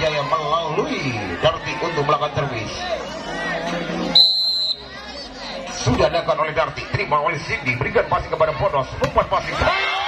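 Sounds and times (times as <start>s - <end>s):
crowd voices: 0.0s - 10.0s
referee's whistle blast: 4.1s - 4.9s.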